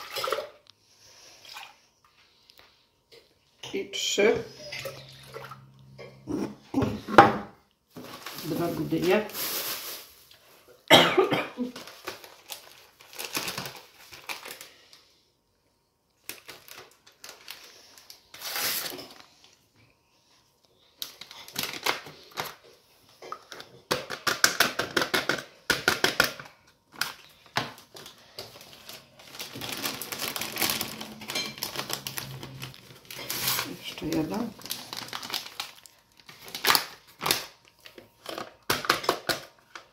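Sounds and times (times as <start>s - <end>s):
paper packets crinkling and tearing: 7.9s - 10.5s, 11.6s - 15.1s, 16.2s - 19.4s, 20.9s - 22.7s, 25.8s - 39.9s.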